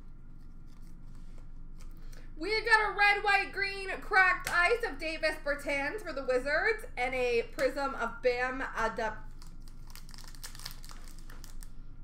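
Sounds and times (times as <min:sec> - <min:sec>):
card pack wrappers crinkling: 0:09.2 - 0:11.8.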